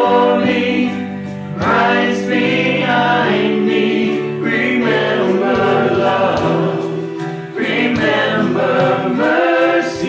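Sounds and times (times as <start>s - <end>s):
drum and cymbal strikes: 0.0s - 10.0s
women and man singing a worship song: 0.0s - 10.0s.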